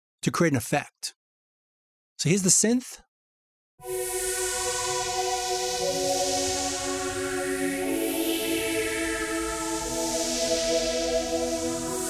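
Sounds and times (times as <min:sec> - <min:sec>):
synthesizer sustained chord: 0:03.8 - 0:12.0.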